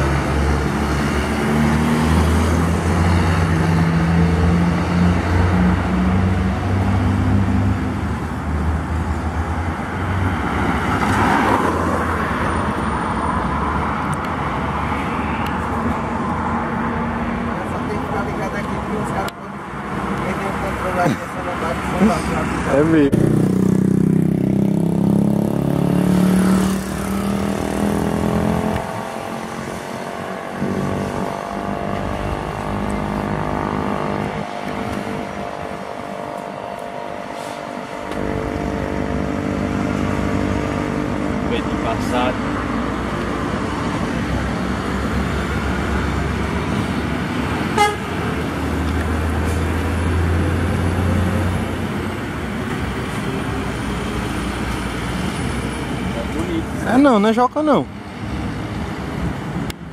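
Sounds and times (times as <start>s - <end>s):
diesel trucks passing: 0.0s - 59.9s
tyre and road noise: 0.0s - 59.9s.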